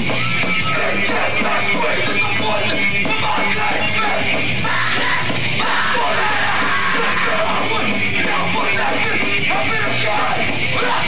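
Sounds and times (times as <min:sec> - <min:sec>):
metal band playing: 0:00.0 - 0:11.0
vocalist yelling: 0:03.2 - 0:11.0.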